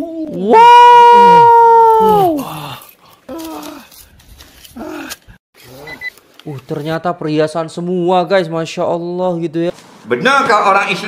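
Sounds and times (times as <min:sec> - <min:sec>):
person exclaiming in surprise: 0:00.0 - 0:03.8.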